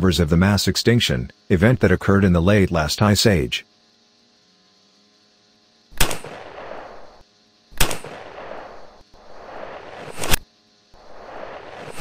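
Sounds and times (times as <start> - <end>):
gunshots: 6.0 - 7.1, 7.8 - 10.4
rushing noise: 11.0 - 12.0.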